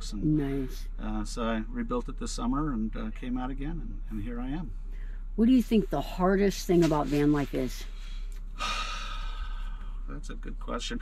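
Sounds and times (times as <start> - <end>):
man sighing: 8.6 - 10.0.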